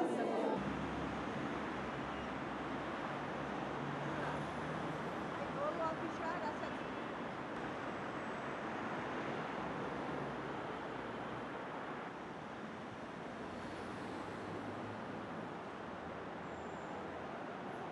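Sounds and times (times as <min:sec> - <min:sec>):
street traffic rushing: 0:00.0 - 0:17.9.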